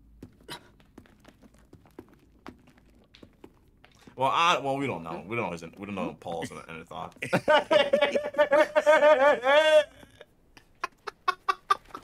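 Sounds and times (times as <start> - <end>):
man laughing: 7.2 - 12.0.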